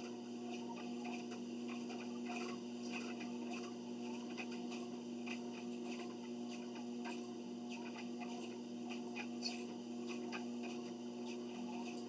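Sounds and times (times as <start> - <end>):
treadmill motor hum: 0.0 - 12.0.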